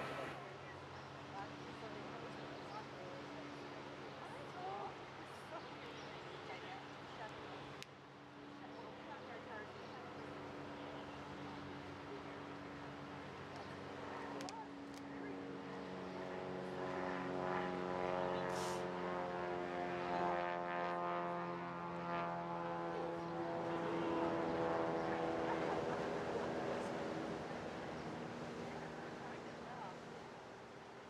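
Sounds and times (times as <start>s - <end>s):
engine droning: 0.0s - 0.5s.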